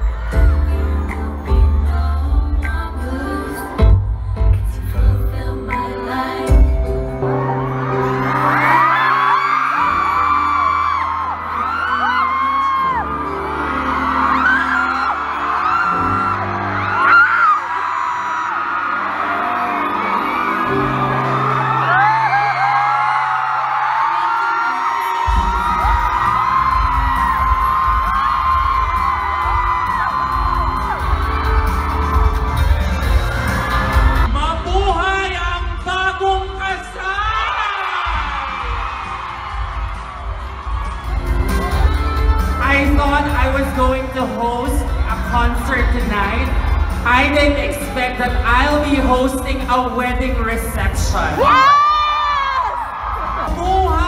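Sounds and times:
fans screaming and cheering: 0.0 - 4.0, 5.0 - 54.0.

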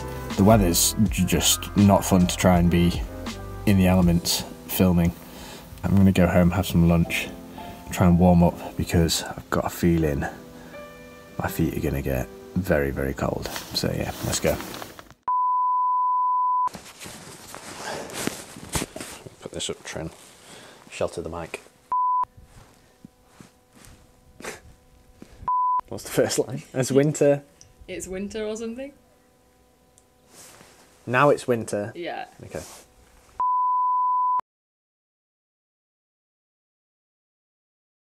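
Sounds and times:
high beep tone: 15.3 - 16.7, 21.9 - 22.3, 25.5 - 25.8, 33.4 - 34.4.

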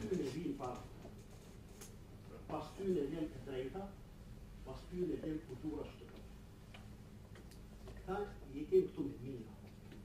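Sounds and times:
man speaking: 0.0 - 0.9, 2.3 - 4.0, 4.6 - 6.2, 8.0 - 9.6.

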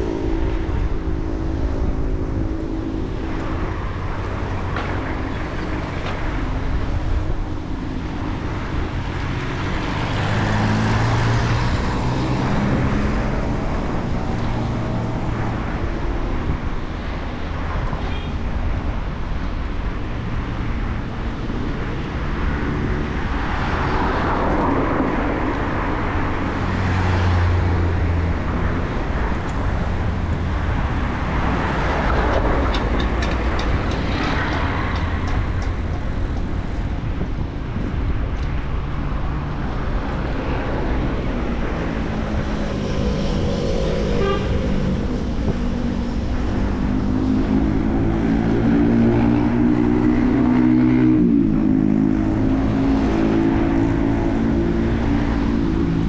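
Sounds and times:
passing vehicle engine hum: 0.0 - 56.0
road traffic: 0.0 - 56.0
wind on microphone: 0.0 - 56.0.

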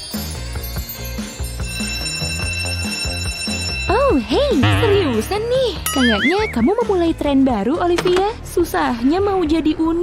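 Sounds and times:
background music with steady beat: 0.0 - 9.0
electric bell ringing: 0.8 - 6.8.

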